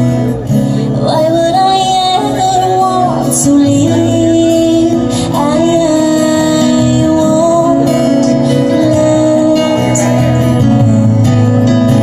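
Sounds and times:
acoustic guitar: 0.0s - 12.0s
drums: 0.0s - 12.0s
keyboard: 0.0s - 12.0s.

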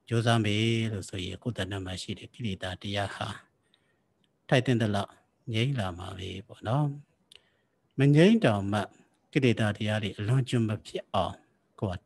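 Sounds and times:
man giving a sermon: 0.0s - 3.5s, 4.5s - 7.0s, 8.0s - 12.0s.

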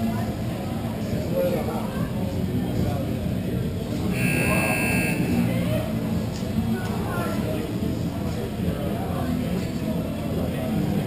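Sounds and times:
murmur of voices: 0.0s - 11.0s
scoreboard buzzer tone: 4.1s - 5.5s.

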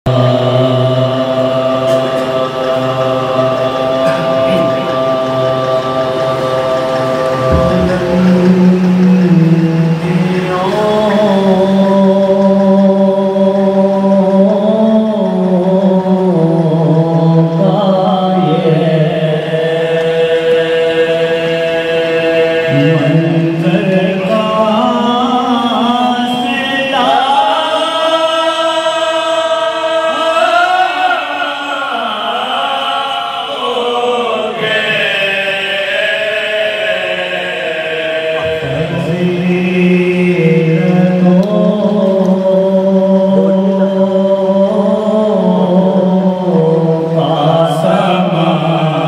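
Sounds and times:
lead reciter chanting: 0.1s - 49.0s
men chanting in unison: 0.1s - 49.0s.

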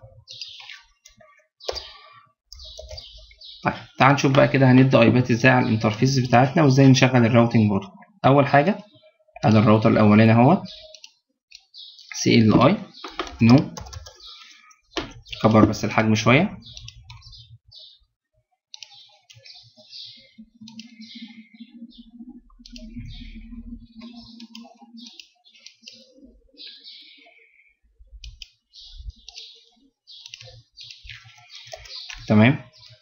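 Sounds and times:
mouse and keyboard clicking: 2.5s - 3.1s, 13.0s - 15.4s, 16.7s - 17.3s, 24.0s - 26.0s, 28.2s - 28.6s, 29.2s - 29.6s, 30.2s - 33.0s.

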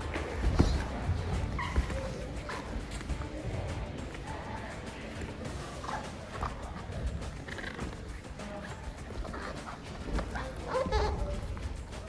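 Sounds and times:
bodies scuffing on mats: 0.0s - 3.3s
people grunting and breathing hard: 0.0s - 12.0s.

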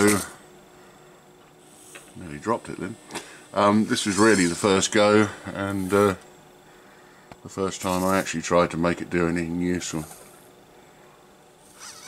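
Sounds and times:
servo motors whining: 11.7s - 12.0s.

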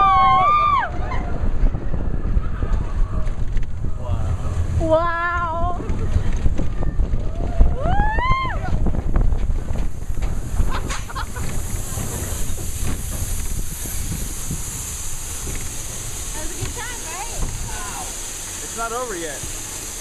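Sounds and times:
rider whooping: 0.0s - 9.0s
roller coaster rumbling on track: 0.0s - 20.0s
wind buffeting microphone: 0.0s - 20.0s.

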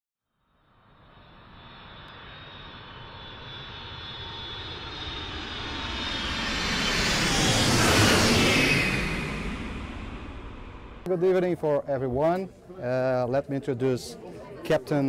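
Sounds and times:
jet engines whine and roar: 0.6s - 11.1s.

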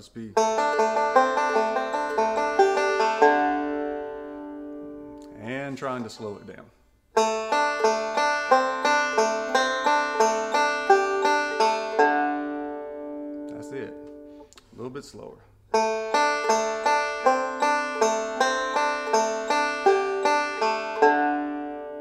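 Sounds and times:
banjo playing rolling notes: 0.0s - 14.5s, 15.7s - 22.0s.

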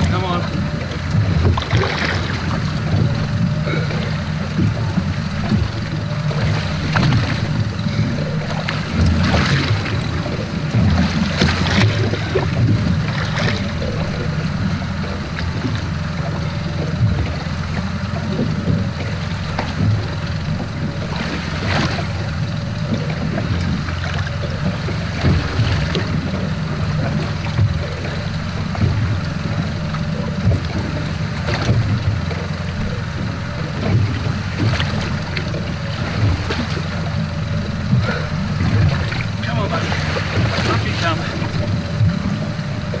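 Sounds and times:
knocks and splashes: 0.0s - 43.0s
steady low drone: 0.0s - 43.0s
water against hull: 0.0s - 43.0s.

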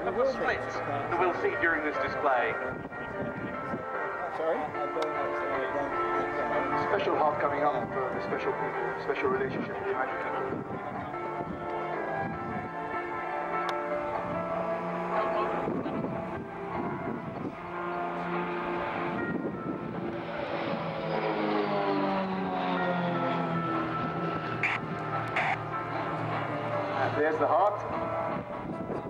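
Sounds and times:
propeller planes engine drone: 0.0s - 29.0s
music playing loudly: 2.9s - 20.2s, 22.8s - 29.0s.

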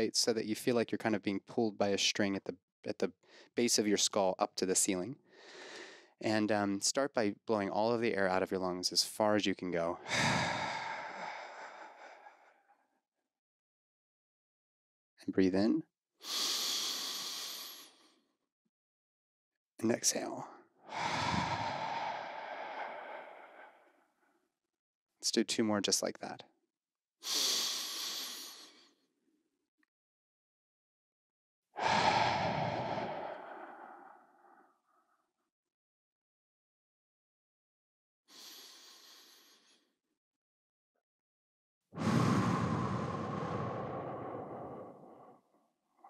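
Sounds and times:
man exhaling into microphone: 10.0s - 12.5s, 20.9s - 23.8s, 31.8s - 34.6s, 42.0s - 45.4s
deep breath out through mouth: 10.0s - 12.6s, 20.9s - 24.0s, 31.8s - 34.6s, 42.0s - 45.4s.

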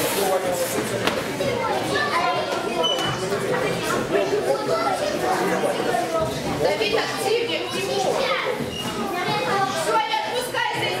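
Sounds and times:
children shouting and talking: 0.3s - 11.0s.

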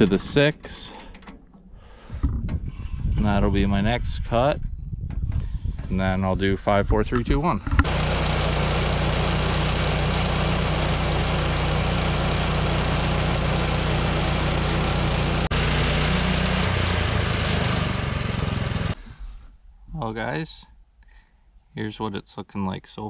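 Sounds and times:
sawmill engine running: 7.8s - 19.0s.

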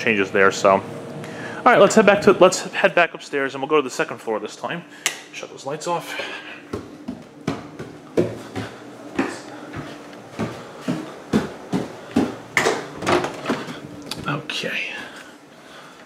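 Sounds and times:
footsteps climbing stairs: 6.2s - 14.4s.

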